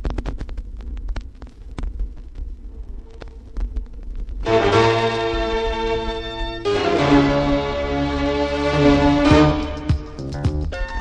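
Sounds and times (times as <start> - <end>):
vinyl surface noise clicks and pops: 0.0 - 4.5
vinyl record low rumble: 0.0 - 11.0.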